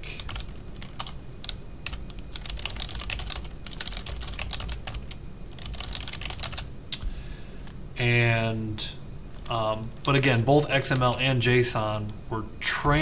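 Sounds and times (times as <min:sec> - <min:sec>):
typing on computer keyboard: 0:00.2 - 0:06.7.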